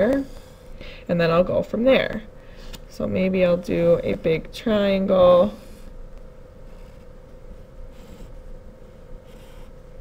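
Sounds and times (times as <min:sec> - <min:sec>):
faint steady hum: 0:00.0 - 0:10.0
pencil scratching on paper: 0:09.2 - 0:09.7.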